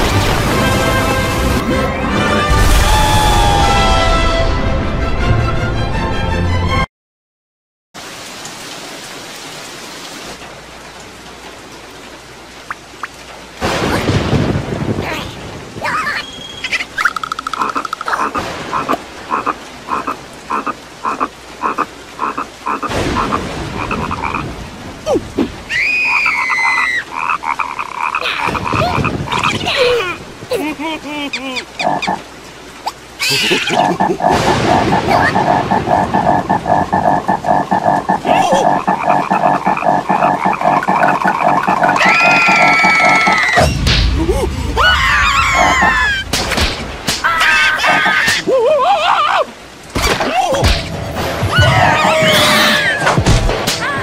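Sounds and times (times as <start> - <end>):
steady rain: 0.0 - 6.8, 8.0 - 54.0
thunder rumbling: 13.6 - 16.4, 28.3 - 30.5, 33.7 - 47.1
squeaky gliding cartoon cries: 16.1 - 18.4, 25.7 - 28.6, 31.2 - 32.2, 32.8 - 34.2, 38.2 - 43.6, 44.8 - 46.2, 47.3 - 49.4, 51.5 - 53.1
frog croaking: 17.0 - 24.5, 31.7 - 43.5.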